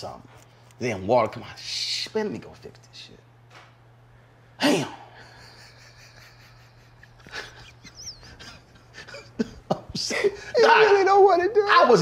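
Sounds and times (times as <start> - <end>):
man laughing breathily: 4.6 - 10.6.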